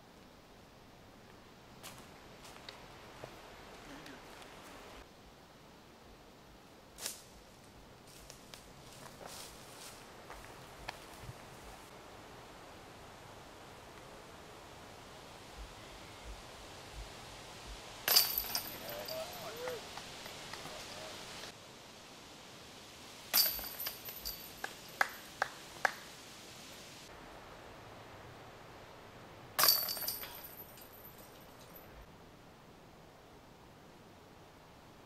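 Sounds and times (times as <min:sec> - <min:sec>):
chains jangling: 0:18.1 - 0:19.8, 0:23.4 - 0:24.9, 0:29.6 - 0:31.8
disc striking metal basket chains: 0:18.1 - 0:21.0, 0:23.3 - 0:25.0, 0:29.6 - 0:31.8.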